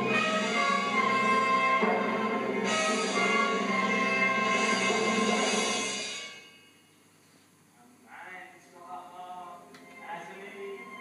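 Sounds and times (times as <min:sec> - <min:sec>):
orchestra playing sustained chord: 0:00.0 - 0:06.6.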